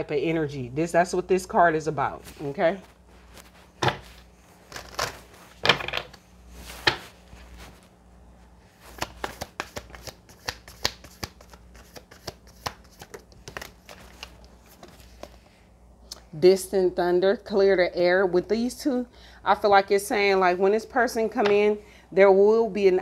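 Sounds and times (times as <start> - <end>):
cards being shuffled: 3.1 - 7.9, 8.7 - 15.4.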